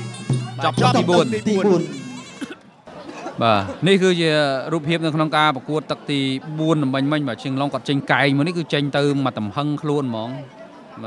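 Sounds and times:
man commentating excitedly: 0.5s - 2.2s.

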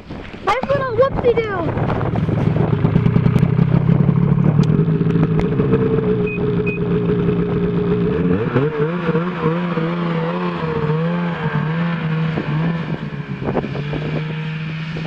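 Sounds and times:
snowmobile engine revving: 0.5s - 15.0s.

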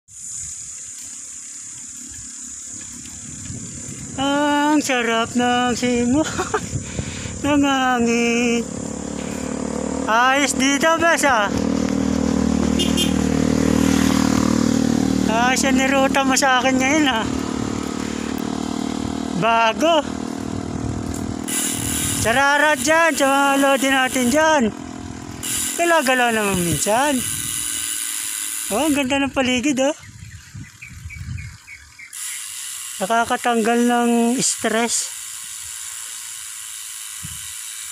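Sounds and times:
motorcycle engine droning: 0.2s - 37.9s
bird chirping: 29.7s - 32.5s.

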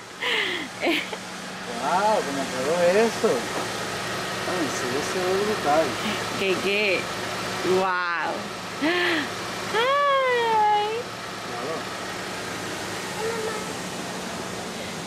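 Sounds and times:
excited wordless exclamations: 9.7s - 11.0s.

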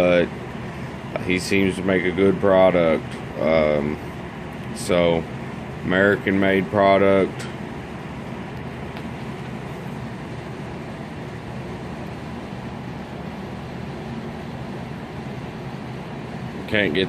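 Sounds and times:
steady machine hum: 0.0s - 17.0s.

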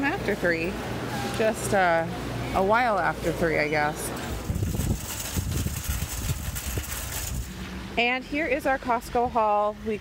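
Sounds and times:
wind buffeting microphone: 4.3s - 7.6s.

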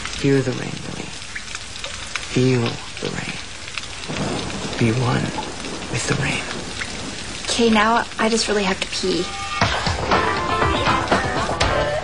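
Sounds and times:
patter of raindrops: 0.0s - 12.0s
rain hissing: 0.0s - 12.0s.

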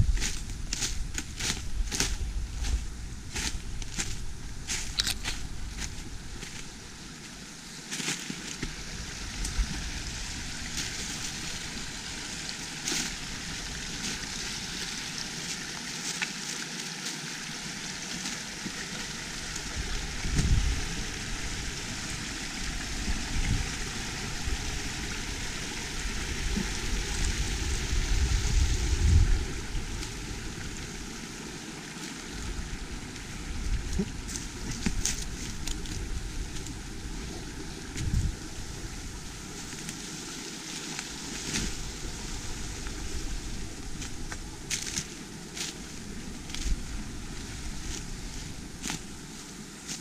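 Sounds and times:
wind rumble on microphone: 0.0s - 7.6s, 8.4s - 15.8s, 17.4s - 50.0s
brook running: 3.6s - 49.9s.

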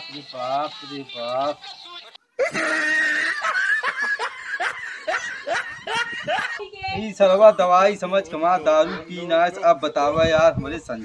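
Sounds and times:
man laughing: 2.4s - 6.6s.

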